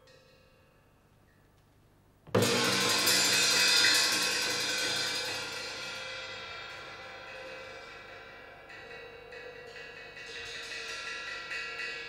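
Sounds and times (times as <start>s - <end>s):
gong and cymbals crashing: 2.4s - 12.0s.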